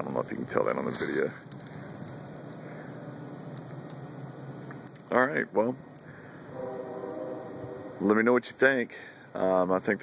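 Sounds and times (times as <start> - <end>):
outdoor background hum and hiss: 0.0 - 10.0.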